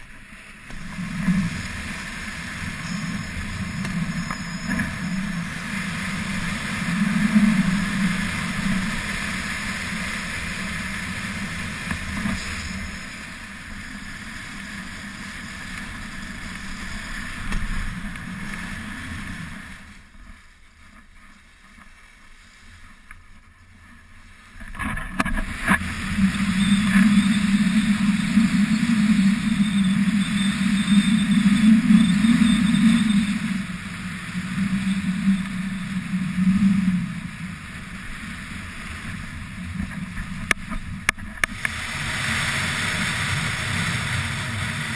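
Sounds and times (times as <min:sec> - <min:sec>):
wind buffeting microphone: 0:25.1 - 0:44.9
skis hissing on snow: 0:41.6 - 0:44.9.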